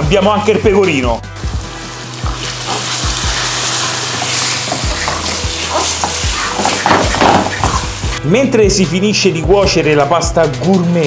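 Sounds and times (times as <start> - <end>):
pasta water sizzling and bubbling: 1.3 - 8.2.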